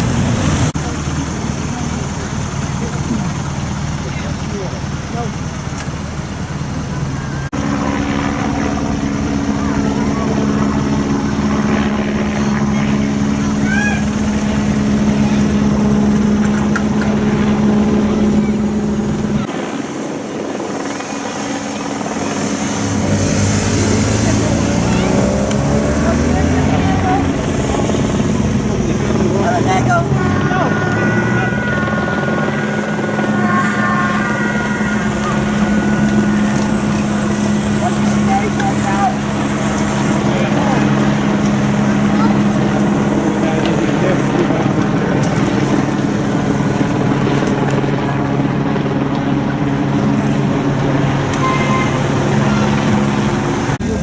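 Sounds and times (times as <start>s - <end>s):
vehicle accelerating: 0.0s - 19.5s, 20.8s - 54.0s
engines droning: 0.0s - 54.0s.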